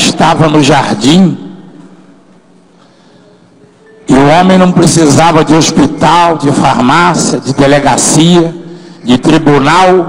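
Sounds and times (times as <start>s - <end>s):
soft held tones: 3.2s - 4.1s.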